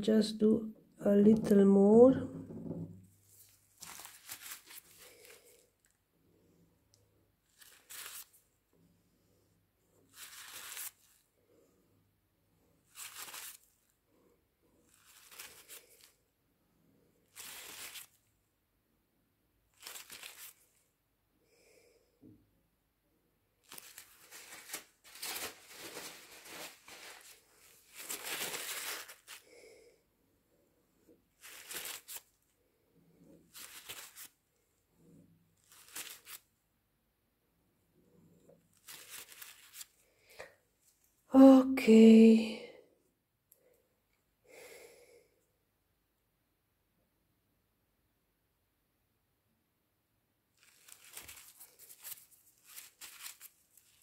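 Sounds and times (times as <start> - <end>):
paper towel crinkling: 3.1 - 5.9, 7.4 - 8.4, 10.1 - 11.3, 12.8 - 14.0, 14.9 - 16.2, 17.3 - 18.2, 19.7 - 20.8, 23.6 - 29.6, 31.4 - 32.4, 33.4 - 34.4, 35.6 - 36.5, 38.7 - 40.1, 50.6 - 54.0.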